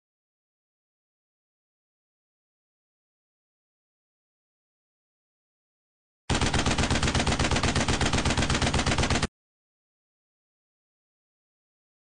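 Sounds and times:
rapid automatic gunfire: 6.3 - 9.3.

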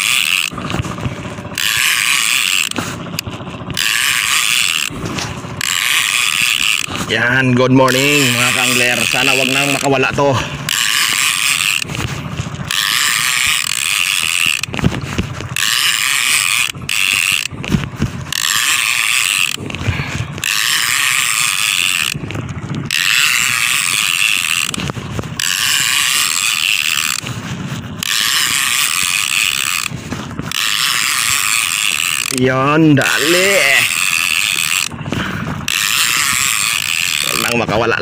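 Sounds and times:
fishing reel ratcheting buzz: 0.0 - 38.0.

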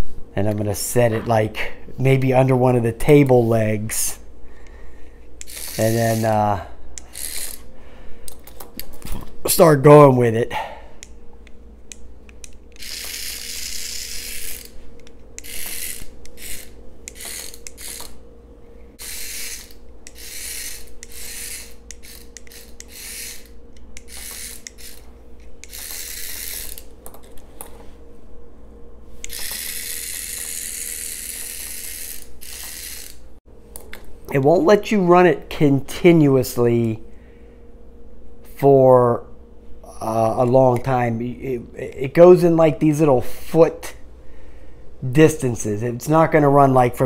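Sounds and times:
small toy motor whirring: 5.4 - 7.7, 12.4 - 18.2, 19.0 - 27.0, 29.2 - 33.2.

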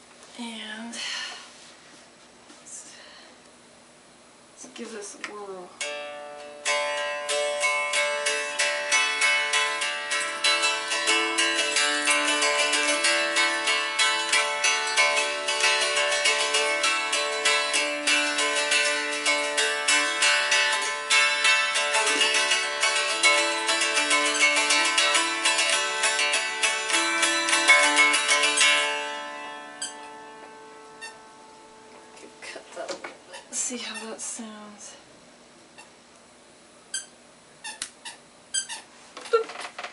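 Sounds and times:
dulcimer strummed: 5.3 - 34.7.

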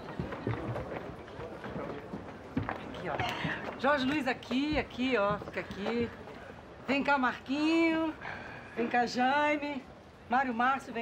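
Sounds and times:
footsteps walking and shuffling: 0.0 - 6.4
indistinct chatter: 0.0 - 11.0.

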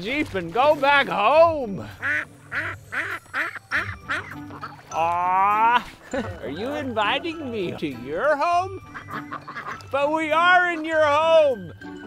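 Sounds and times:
duck quacking: 1.9 - 4.9, 8.7 - 9.9.

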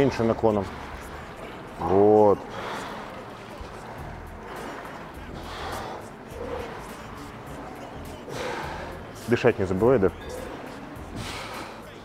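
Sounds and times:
gym music with bass line: 0.0 - 12.0
man breathing hard: 2.4 - 3.3, 3.9 - 9.2, 10.2 - 12.0
forceful exhales: 11.1 - 11.8.

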